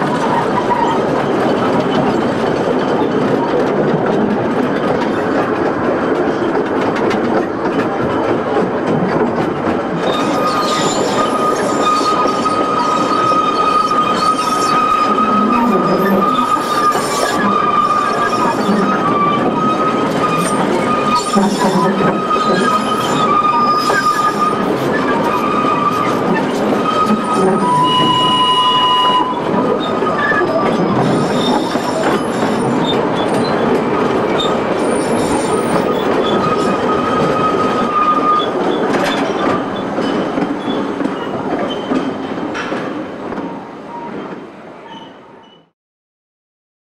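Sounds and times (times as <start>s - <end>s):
wheels clattering on rail: 0.0s - 45.6s
wheel flanges squealing: 10.0s - 42.2s.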